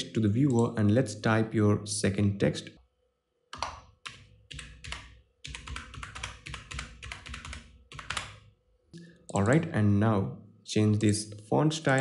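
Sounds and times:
typing on computer keyboard: 3.5 - 8.5.

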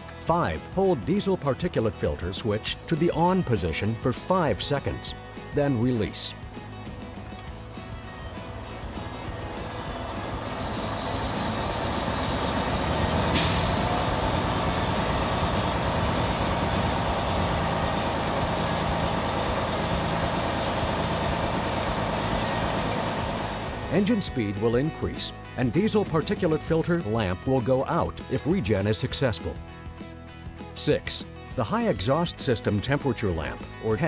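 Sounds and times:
diesel truck engine running: 6.8 - 24.3
air hiss: 13.3 - 15.6.

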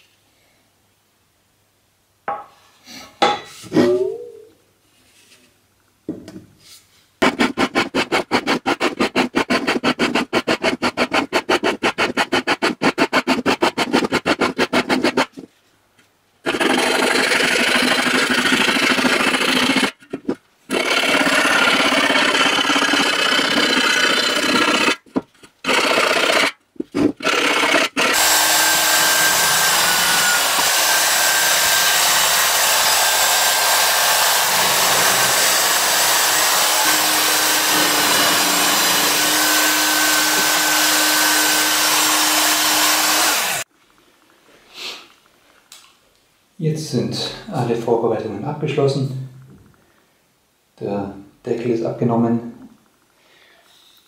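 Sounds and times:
rotary tool grinding sheet metal: 20.7 - 25.0, 27.2 - 43.6.

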